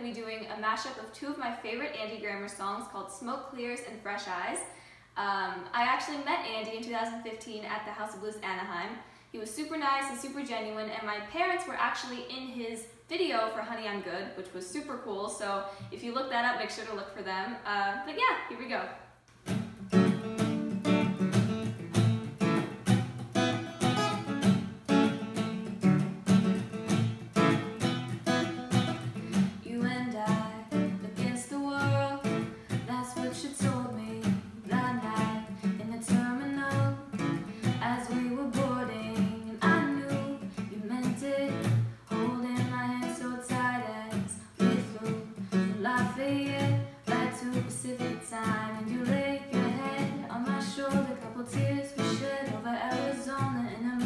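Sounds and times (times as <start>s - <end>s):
acoustic guitar strumming: 19.4s - 54.0s
woman singing: 29.6s - 54.0s.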